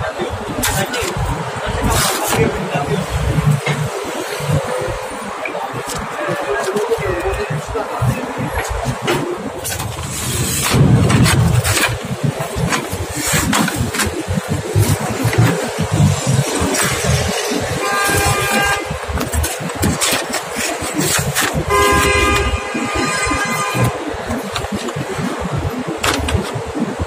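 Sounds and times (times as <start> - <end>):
street traffic: 0.0 - 27.0
car horn blasts: 17.7 - 19.1, 21.6 - 24.2.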